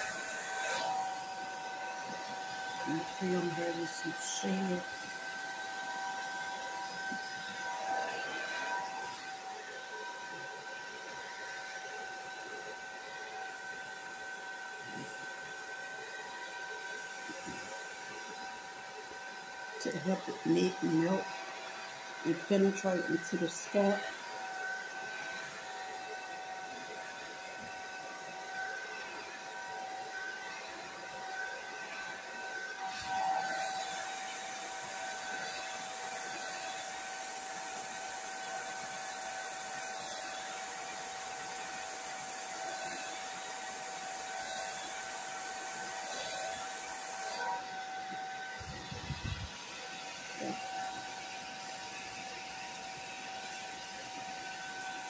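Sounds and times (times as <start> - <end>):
hair dryer running: 0.0 - 55.0.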